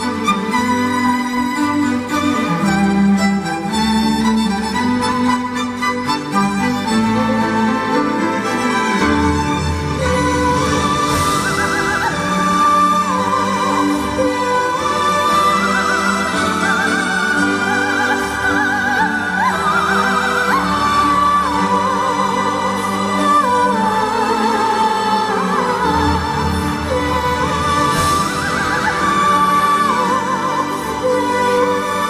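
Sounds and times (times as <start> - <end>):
orchestra with bowed strings: 0.0 - 32.0
soprano singing: 0.0 - 32.0.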